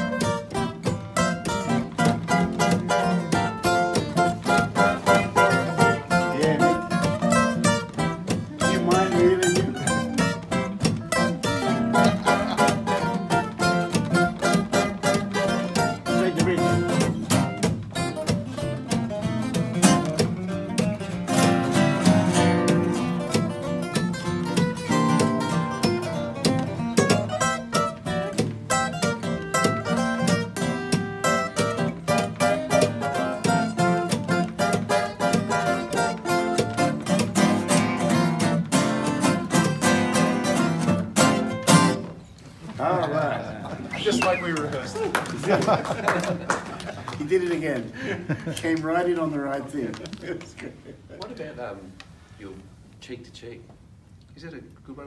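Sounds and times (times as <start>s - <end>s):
acoustic guitars playing: 0.0s - 51.1s.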